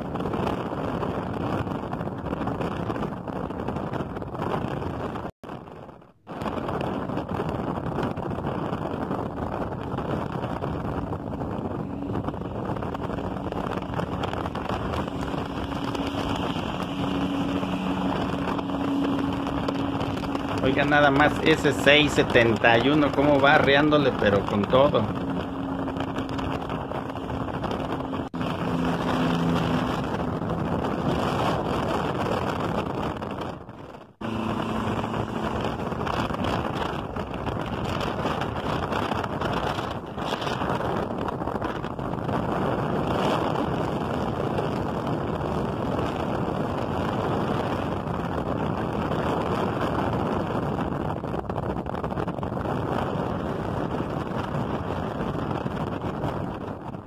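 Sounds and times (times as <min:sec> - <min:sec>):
wind and road noise: 0:00.0 - 0:57.0
diesel coach engines running: 0:10.9 - 0:32.8, 0:34.1 - 0:37.3.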